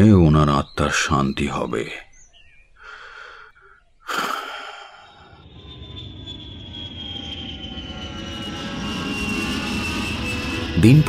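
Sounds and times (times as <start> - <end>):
jet engines rumbling and whining: 4.1 - 11.0.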